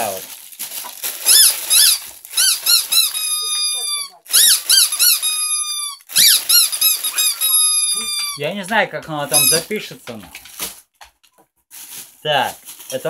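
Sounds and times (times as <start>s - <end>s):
squeaky toy squeaking: 1.2s - 8.4s, 9.3s - 9.7s.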